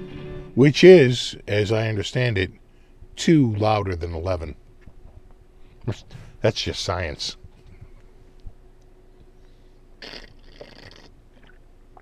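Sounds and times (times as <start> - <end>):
slurping sip from tumbler: 10.0 - 11.6
faint mouth sounds: 10.0 - 12.0.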